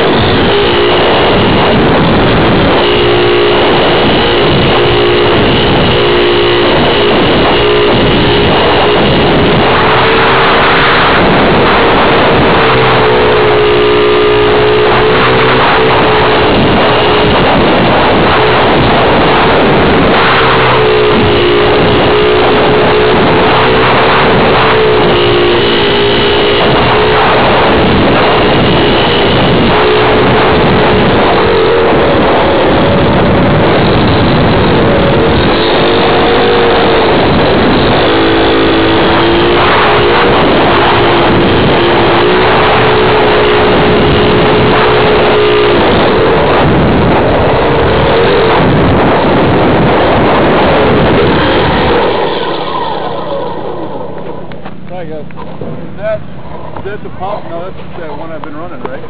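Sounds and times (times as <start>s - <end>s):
wind rush: 0.0s - 59.0s.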